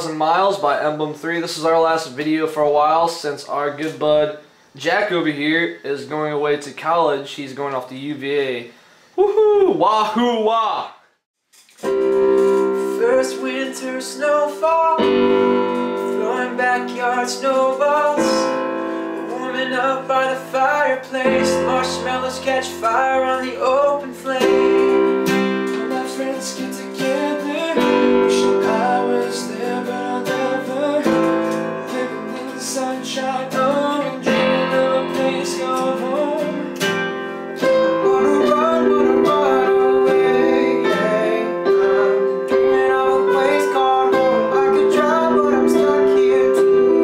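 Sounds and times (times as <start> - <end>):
digital piano: 11.7 - 47.0
strummed acoustic guitar: 11.8 - 47.0
young men singing: 25.8 - 36.6, 38.0 - 46.8.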